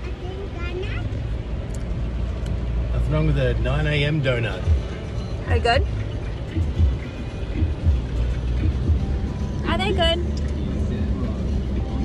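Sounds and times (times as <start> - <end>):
car road and engine rumble: 0.0 - 12.0
tyres on wet road: 0.0 - 12.0.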